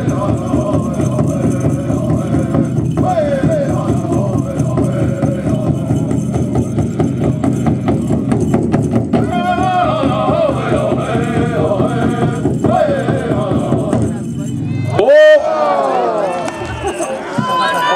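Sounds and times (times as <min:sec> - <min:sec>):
group singing in high voices: 0:00.0 - 0:08.5, 0:09.2 - 0:14.2
big drum pounding: 0:00.0 - 0:14.9
voices: 0:09.2 - 0:17.9
loud whoop: 0:14.7 - 0:17.9.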